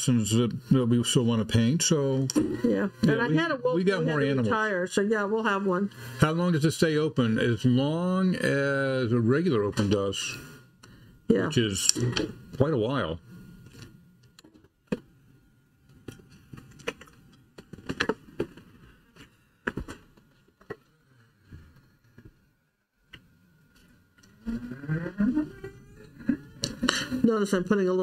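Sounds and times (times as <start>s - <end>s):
person talking: 0.0s - 4.8s.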